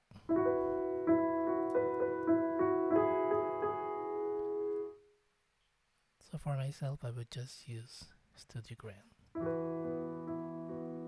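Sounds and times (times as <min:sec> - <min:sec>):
piano notes and chords: 0:00.1 - 0:05.1, 0:09.4 - 0:11.0.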